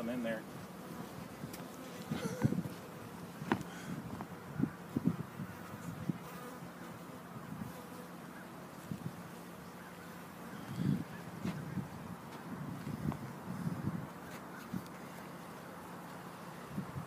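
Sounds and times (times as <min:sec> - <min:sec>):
bees buzzing: 0:00.4 - 0:16.8.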